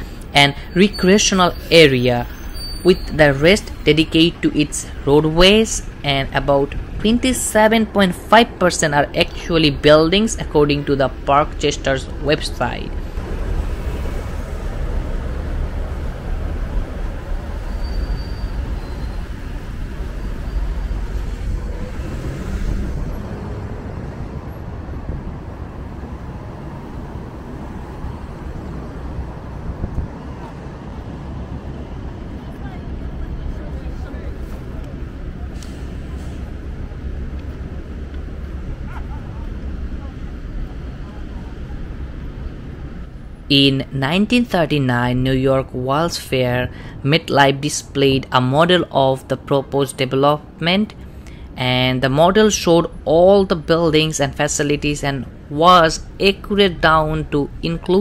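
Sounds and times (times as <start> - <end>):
cars passing: 0.0 - 58.0
people's voices: 32.3 - 37.5.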